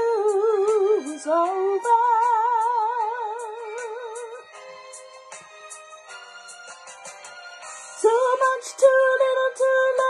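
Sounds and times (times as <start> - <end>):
woman singing with vibrato: 0.0 - 4.4, 8.0 - 10.0
backing track ticking beat: 0.2 - 8.6.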